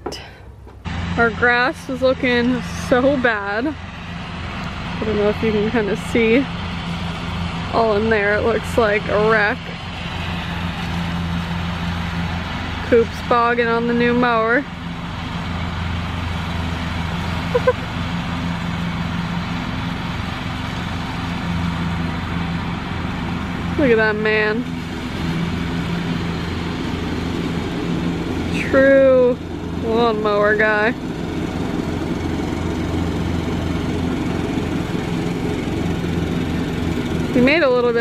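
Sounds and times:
riding lawn mower engine running: 0.0 - 38.0.

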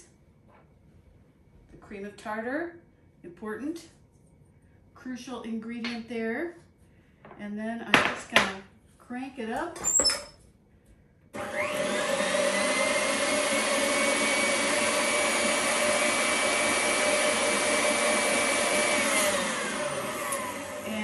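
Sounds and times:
electric stand mixer motor whirring: 11.4 - 21.0.

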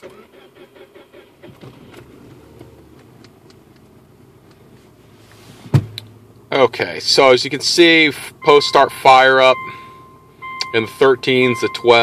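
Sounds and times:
car engine cranking and idling: 0.0 - 12.0
sharp thump: 5.6 - 6.1.

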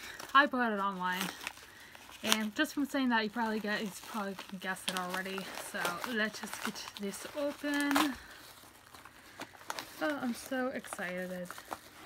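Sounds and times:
packaging crackling and ripping: 0.0 - 12.0
packaging rustling: 0.0 - 12.0.

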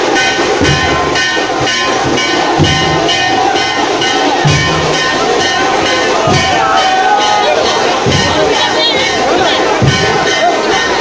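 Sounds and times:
deep bass beat: 0.0 - 10.9
drums beating quickly: 0.0 - 11.0.

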